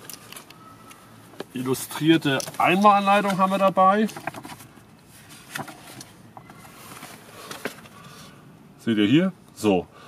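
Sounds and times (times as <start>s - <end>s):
paper booklet rustling: 1.5s - 8.1s.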